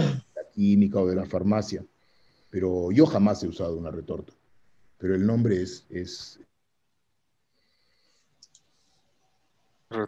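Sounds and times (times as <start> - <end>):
man speaking: 0.0 - 1.9, 2.6 - 4.3, 5.0 - 6.5.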